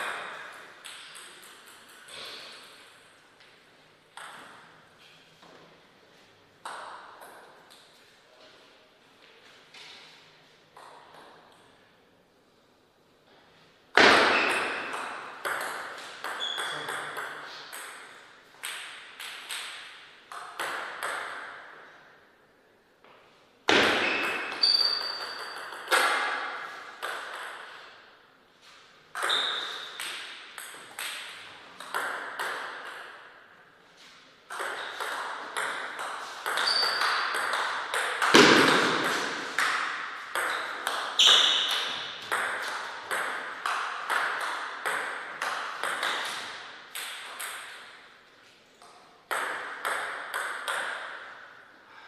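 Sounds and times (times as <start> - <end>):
ping pong ball clicking off bats: 0.0 - 3.1, 4.1 - 4.7, 14.0 - 21.8, 23.7 - 27.9, 29.1 - 33.3, 34.5 - 48.1, 48.8 - 51.5.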